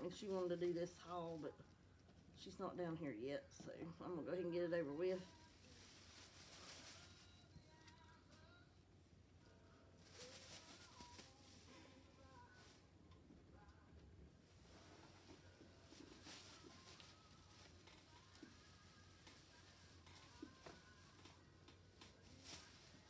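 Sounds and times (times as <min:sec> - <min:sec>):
plastic bag rustling: 0:00.0 - 0:01.6, 0:04.7 - 0:08.0, 0:10.0 - 0:12.8, 0:14.4 - 0:23.0
faint distant voices: 0:00.0 - 0:23.0.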